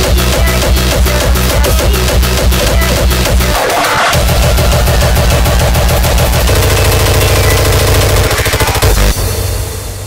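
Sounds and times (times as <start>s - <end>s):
distorted hardcore kick drums: 0.0s - 10.0s.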